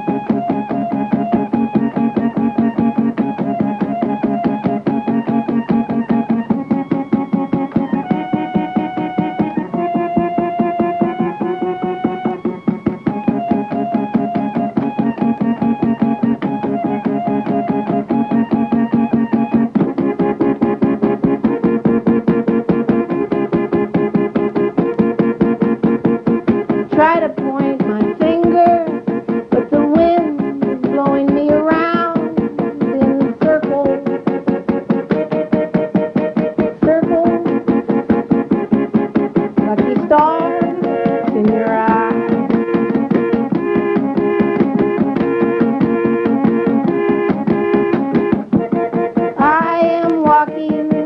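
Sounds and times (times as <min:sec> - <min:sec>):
keyboard playing repeated chords: 0:00.0 - 0:51.0
person singing: 0:26.5 - 0:34.5, 0:35.1 - 0:37.8, 0:39.6 - 0:42.8, 0:48.7 - 0:51.0.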